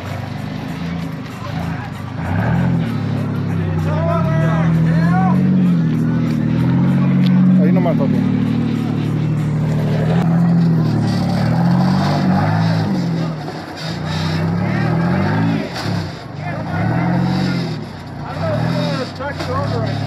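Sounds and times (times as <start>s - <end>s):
off-road engine revving: 0.0s - 20.0s.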